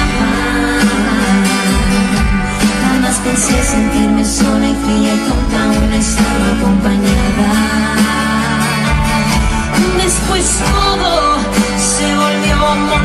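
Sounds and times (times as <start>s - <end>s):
romantic ballad with guitar: 0.0s - 13.0s.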